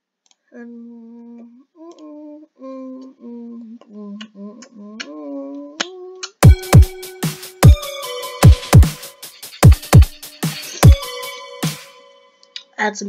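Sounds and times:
person humming a tune: 0.6s - 11.8s.

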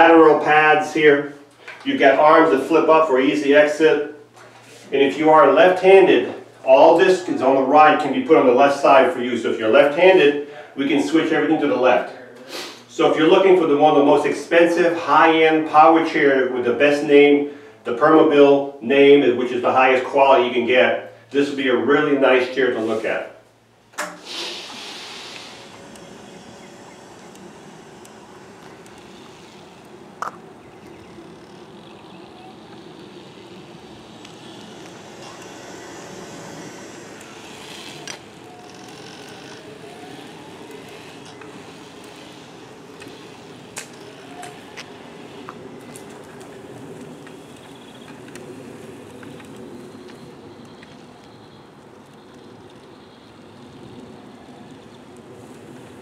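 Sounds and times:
outdoor background noise: 0.0s - 56.0s
power wheelchair motors whirring: 23.6s - 56.0s
sharp clicks: 23.9s - 32.0s, 32.6s - 52.9s.

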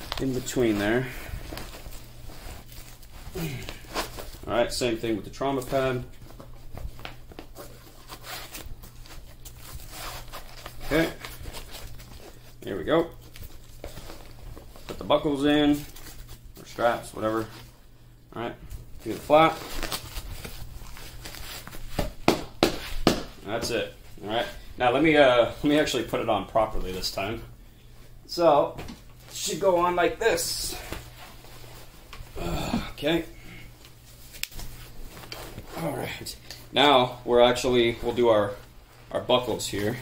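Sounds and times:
fabric rustling and scraping: 0.0s - 4.6s, 5.6s - 12.6s, 18.8s - 23.1s, 28.0s - 32.4s, 33.8s - 36.3s.

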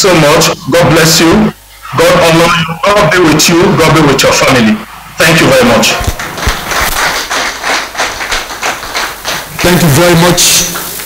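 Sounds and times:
audience hand clapping: 6.0s - 11.0s.

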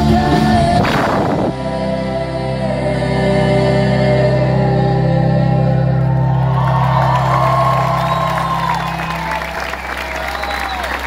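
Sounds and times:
audience cheering and applauding: 6.1s - 11.0s.

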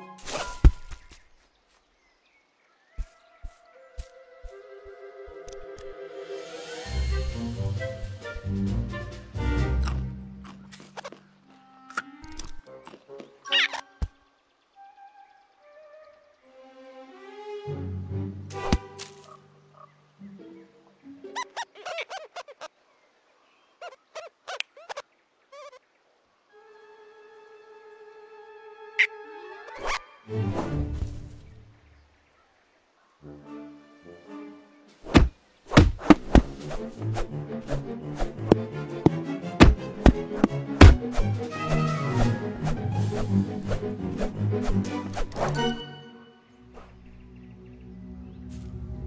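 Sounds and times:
sustained music notes: 3.2s - 10.8s, 36.2s - 49.0s
high squeaky cartoon chirps: 13.4s - 14.1s, 21.3s - 22.7s, 23.8s - 25.8s
heavy thump: 35.1s - 36.6s, 39.6s - 40.2s, 40.8s - 41.0s
soft low thuds: 35.1s - 37.2s, 38.4s - 41.2s.

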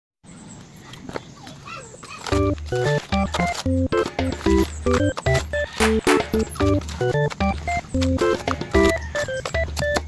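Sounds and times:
outdoor background noise: 0.2s - 10.0s.

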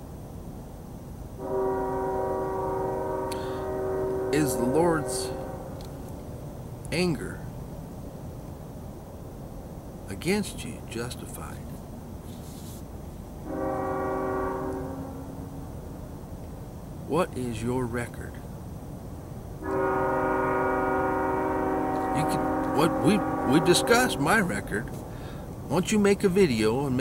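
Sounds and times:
train horn: 1.4s - 6.0s, 13.4s - 15.7s, 19.6s - 25.4s.

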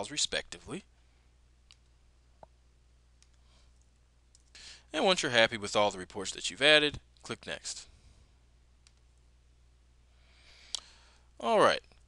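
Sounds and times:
low room hum: 0.0s - 12.0s
mouse click: 3.2s - 3.4s, 8.8s - 9.2s.

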